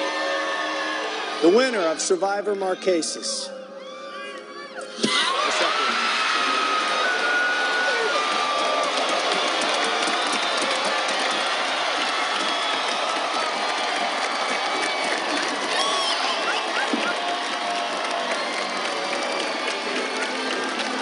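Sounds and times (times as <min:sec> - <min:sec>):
crowd cheering and screaming: 0:00.0 - 0:21.0
whistles: 0:09.2 - 0:11.4, 0:12.3 - 0:13.6.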